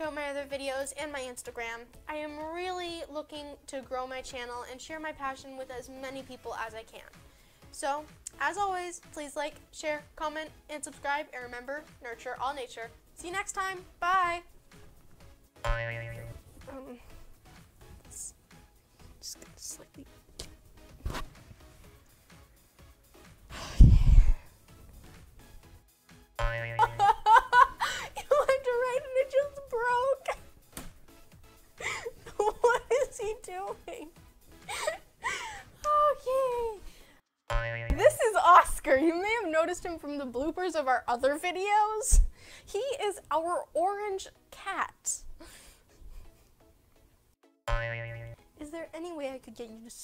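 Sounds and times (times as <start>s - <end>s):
cartoon boing sound effect: 15.6s - 16.3s, 26.4s - 27.0s, 37.5s - 38.1s, 47.7s - 48.4s
woman speaking: 19.2s - 20.1s, 27.8s - 30.4s, 31.8s - 34.1s, 35.8s - 36.8s, 37.9s - 45.2s, 48.6s - 50.0s.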